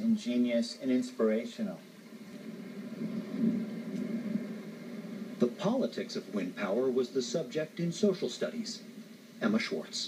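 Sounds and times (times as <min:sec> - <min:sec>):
machine humming: 0:01.3 - 0:10.0.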